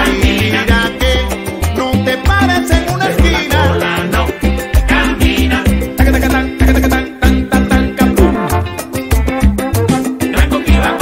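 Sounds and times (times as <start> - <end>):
upbeat latin music: 0.0 - 11.0.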